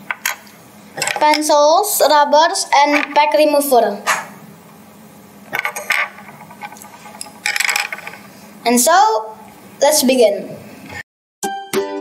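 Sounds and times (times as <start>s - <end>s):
plastic parts rattling: 1.0s - 1.5s, 5.5s - 8.2s.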